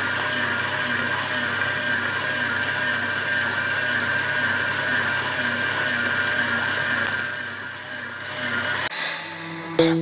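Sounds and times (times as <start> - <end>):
beater churning dough: 0.0 - 8.8
stand mixer motor running: 0.0 - 8.8.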